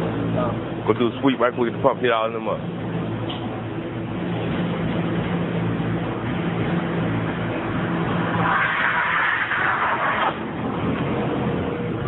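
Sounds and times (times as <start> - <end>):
loud rushing hiss: 7.8 - 10.6.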